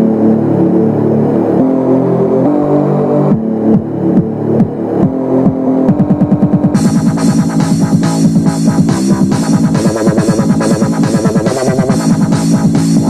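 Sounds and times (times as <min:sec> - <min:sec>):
dubstep synth bass: 0:00.0 - 0:13.0.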